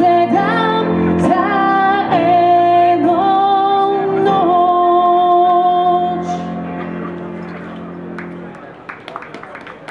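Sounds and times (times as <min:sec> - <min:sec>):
audience clapping: 0:07.4 - 0:09.9.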